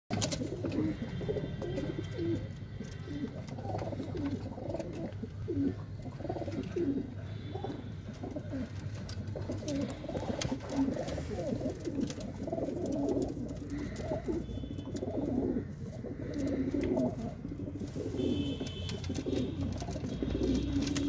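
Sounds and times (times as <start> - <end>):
pigeons cooing: 0.1 - 21.0.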